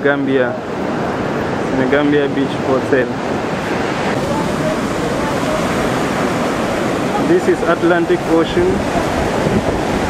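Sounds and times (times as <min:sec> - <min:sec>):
surf breaking on beach: 0:00.0 - 0:10.0
wind on microphone: 0:00.0 - 0:10.0.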